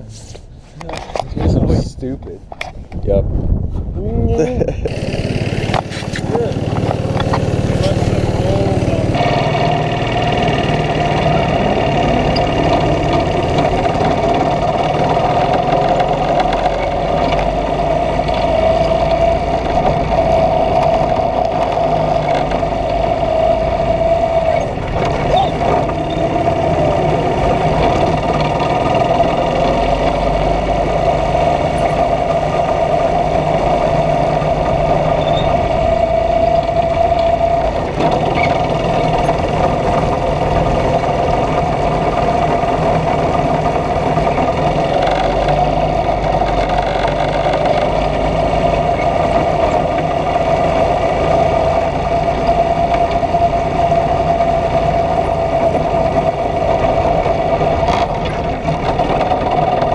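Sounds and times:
go-kart engine running: 0:04.8 - 0:59.9.

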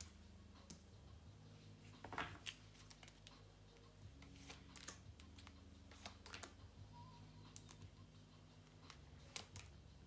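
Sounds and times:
cards clicking and tapping: 0:04.2 - 0:06.6, 0:07.5 - 0:07.9, 0:08.7 - 0:09.8.

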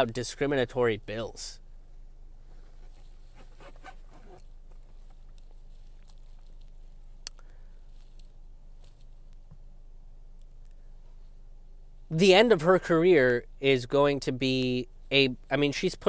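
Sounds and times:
steady low hum: 0:00.0 - 0:16.0
soft rustles: 0:02.4 - 0:09.7.

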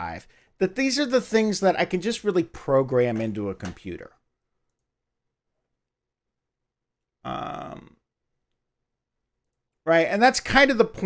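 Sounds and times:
person speaking: 0:00.0 - 0:04.2.

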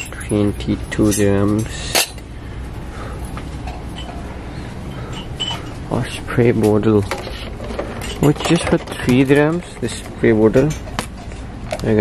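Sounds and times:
low background hum: 0:00.0 - 0:12.0
metal utensils clinking: 0:06.6 - 0:11.5.

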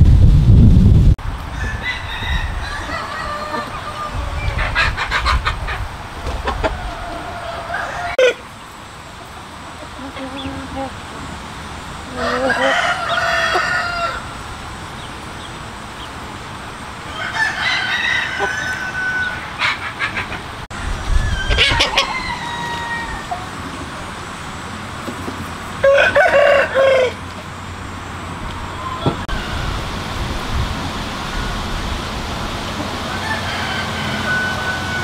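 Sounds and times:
rooster crowing: 0:01.5 - 0:04.8, 0:06.4 - 0:08.4, 0:12.1 - 0:14.4, 0:17.1 - 0:19.8, 0:21.1 - 0:23.6, 0:25.8 - 0:27.4, 0:33.0 - 0:35.0
chickens clucking and calling: 0:01.5 - 0:30.2, 0:30.8 - 0:35.0.

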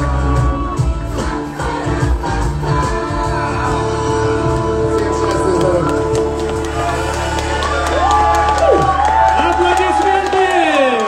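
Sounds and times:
live music held chord: 0:00.0 - 0:08.2
audience whooping and cheering: 0:05.2 - 0:11.0.

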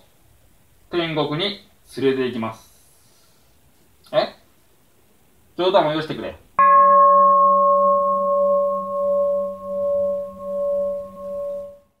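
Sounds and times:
bowl bell ringing: 0:06.6 - 0:12.0.

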